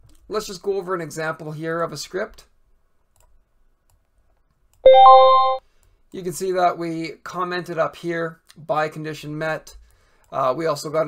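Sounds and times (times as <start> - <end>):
electronic alert chime: 4.9 - 5.6.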